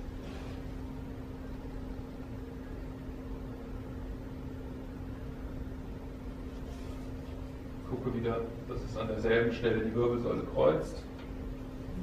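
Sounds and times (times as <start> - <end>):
room hum with low tone: 0.0 - 12.0.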